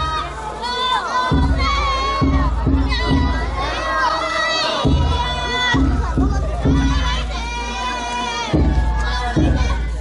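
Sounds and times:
children shouting a chant: 0.0 - 10.0
low festival drum beat: 0.0 - 10.0.

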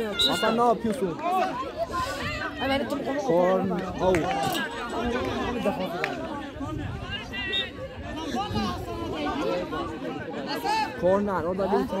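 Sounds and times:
voices chattering and calling out: 0.0 - 12.0.

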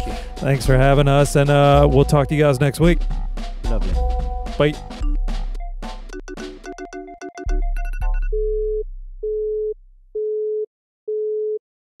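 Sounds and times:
telephone busy tone beeps: 6.7 - 11.6.

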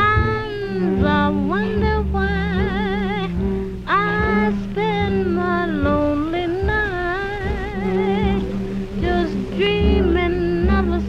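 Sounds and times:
jazz band accompaniment: 0.0 - 11.0
tenor saxophone ballad melody: 0.0 - 11.0.

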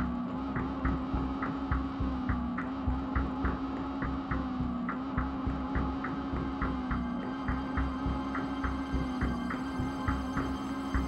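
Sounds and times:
tense dark background music: 0.0 - 11.0.

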